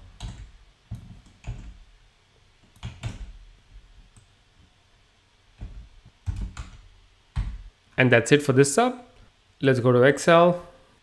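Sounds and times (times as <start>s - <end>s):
keyboard typing: 0.1s - 1.8s, 2.7s - 3.4s, 5.6s - 7.7s.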